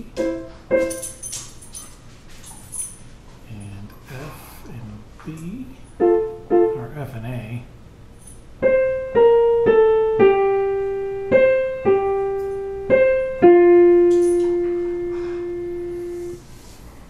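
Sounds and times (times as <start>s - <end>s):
digital piano melody: 0.0s - 1.3s, 6.0s - 7.0s, 8.6s - 16.4s.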